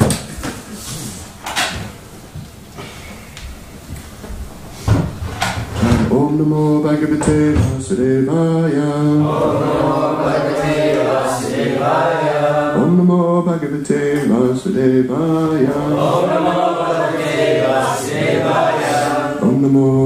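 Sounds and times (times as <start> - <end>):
man chanting a prayer: 19.3 - 20.0.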